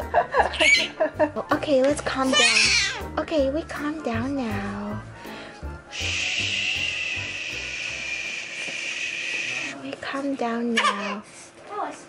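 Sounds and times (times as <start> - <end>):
woman shushing: 5.9 - 9.7.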